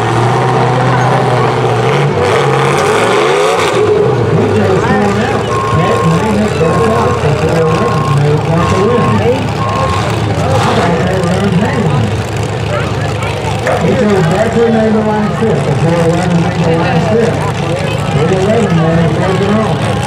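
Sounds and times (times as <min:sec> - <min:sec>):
demolition derby car engines: 0:00.0 - 0:20.0
heavy equipment running: 0:00.0 - 0:20.0
back-up alarm beeping: 0:05.4 - 0:10.1.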